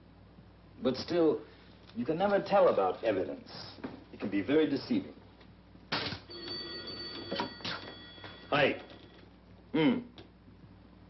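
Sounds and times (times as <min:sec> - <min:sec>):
telephone bell ringing: 0:06.3 - 0:09.2.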